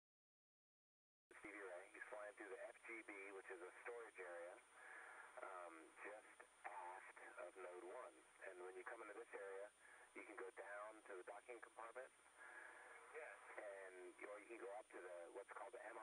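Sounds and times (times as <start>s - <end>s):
person talking over radio: 1.3s - 16.0s.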